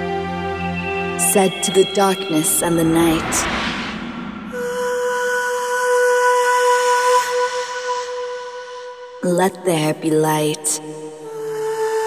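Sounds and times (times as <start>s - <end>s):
steady electronic tone: 0.0s - 5.9s.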